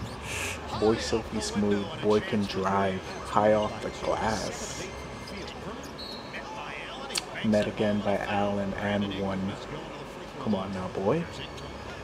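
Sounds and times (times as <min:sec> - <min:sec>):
faint commentary: 0:00.0 - 0:12.0
shoe squeaks on court: 0:05.2 - 0:06.4.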